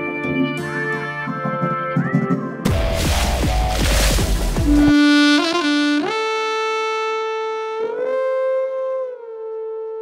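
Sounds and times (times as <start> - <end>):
long held wind instrument note: 4.7 - 10.0.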